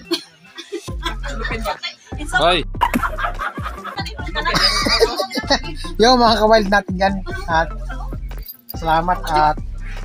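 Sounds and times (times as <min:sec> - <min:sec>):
intro music: 0:00.7 - 0:10.0.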